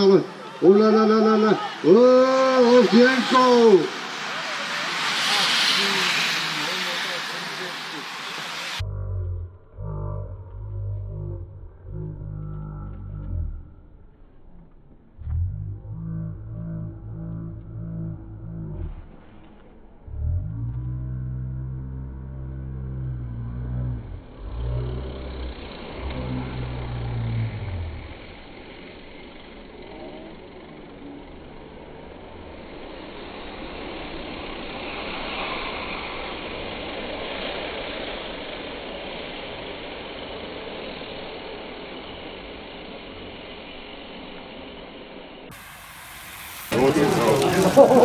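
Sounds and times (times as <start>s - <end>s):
racing bicycles whirring past: 0.0s - 48.0s
low rumble: 2.0s - 45.8s.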